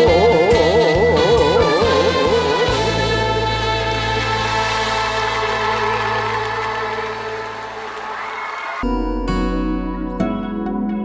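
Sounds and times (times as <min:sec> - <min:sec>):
live band closing chord: 0:00.0 - 0:08.2
audience clapping: 0:03.7 - 0:08.8.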